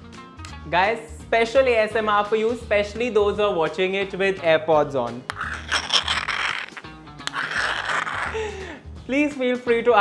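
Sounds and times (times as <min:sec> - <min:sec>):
metal spoon scraping in a bowl: 0:05.3 - 0:08.4.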